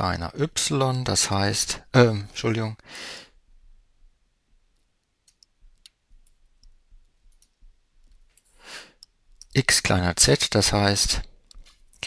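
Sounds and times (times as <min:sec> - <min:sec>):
short breath in: 0:02.8 - 0:03.4, 0:08.6 - 0:09.0.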